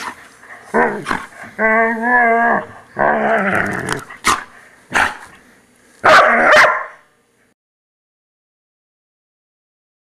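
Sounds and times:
dog barking: 6.0s - 7.1s.

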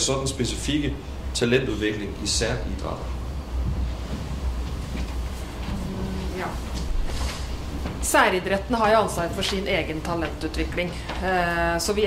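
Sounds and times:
low rumble: 3.2s - 8.0s.

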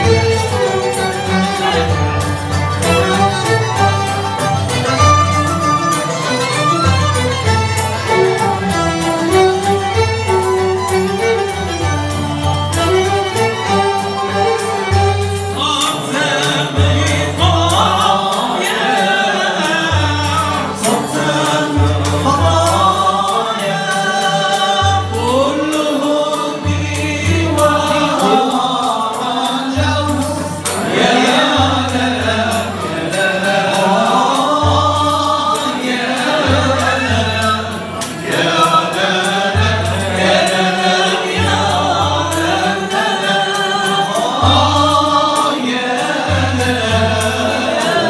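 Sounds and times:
violins and cello: 0.0s - 28.8s
men singing together: 0.0s - 48.0s.

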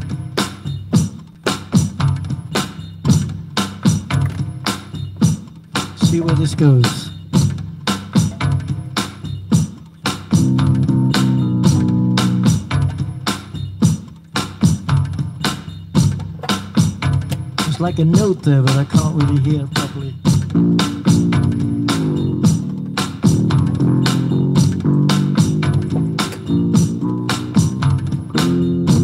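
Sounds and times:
electronic percussion beat: 0.0s - 29.0s.

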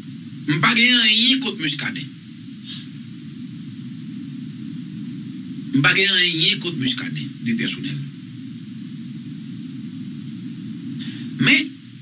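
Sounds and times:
low rumble: 0.0s - 12.0s
steady hiss: 0.0s - 12.0s.

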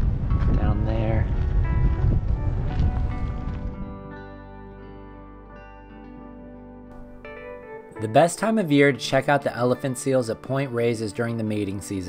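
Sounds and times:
wind buffeting microphone: 0.0s - 4.0s
soft background music: 0.1s - 12.0s.

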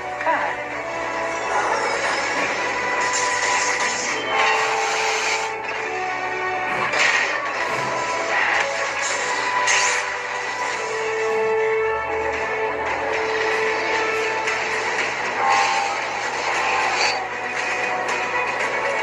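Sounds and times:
film soundtrack music: 0.0s - 19.0s.

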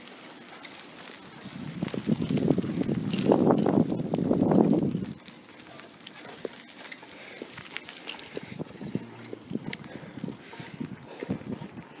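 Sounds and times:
footsteps dull thumps: 5.8s - 12.0s.

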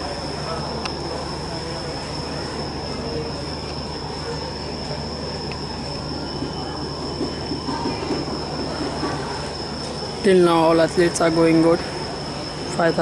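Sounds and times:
faint distant voices: 0.0s - 13.0s
thin high-pitched whine: 0.0s - 13.0s.

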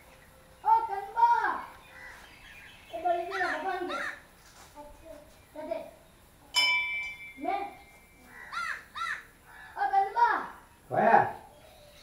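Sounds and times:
crow cawing: 2.0s - 2.3s, 3.3s - 4.3s, 8.2s - 9.9s
brass bell ringing: 6.6s - 7.5s.

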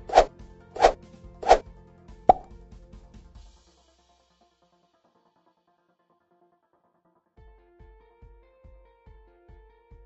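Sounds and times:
soft background music: 0.0s - 10.0s
short pop sound effect: 2.3s - 2.5s.

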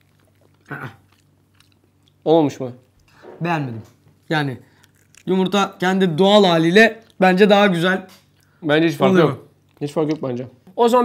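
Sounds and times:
chewing food: 0.0s - 7.5s, 8.1s - 8.6s, 9.5s - 10.3s.

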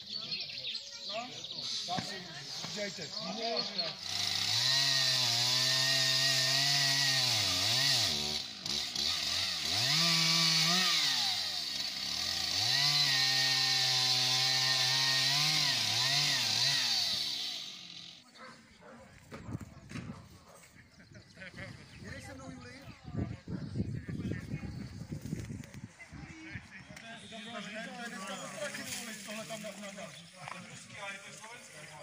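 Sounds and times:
chainsaw cutting log: 3.8s - 18.2s.

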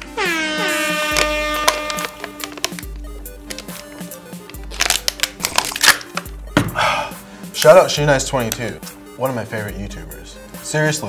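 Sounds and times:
air horn blaring: 0.0s - 2.5s.

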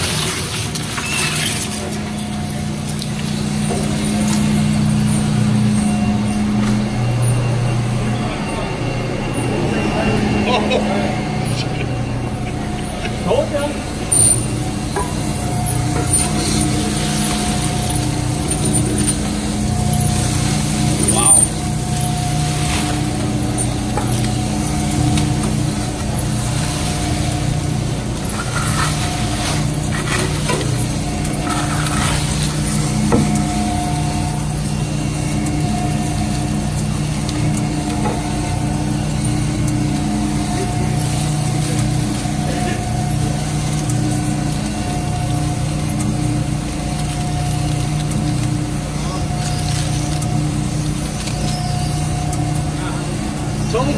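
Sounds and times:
industrial shredder running: 0.0s - 53.9s
higher tone: 1.5s - 45.8s.

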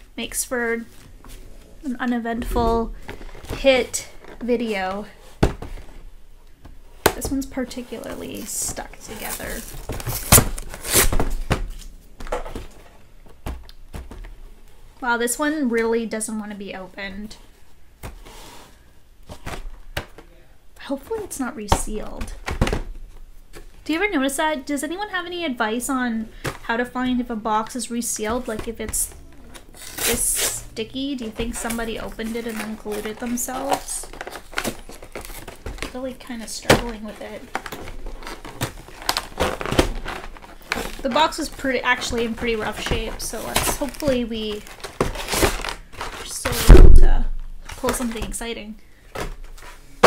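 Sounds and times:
cardboard box crinkling and scraping: 7.4s - 11.1s, 29.3s - 46.6s.

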